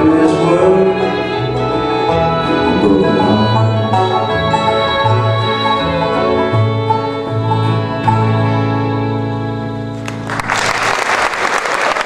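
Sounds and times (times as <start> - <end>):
banjo: 0.0 - 10.0
fiddle: 0.0 - 10.2
mandolin: 0.0 - 10.3
acoustic guitar: 0.0 - 10.4
upright bass: 0.0 - 10.4.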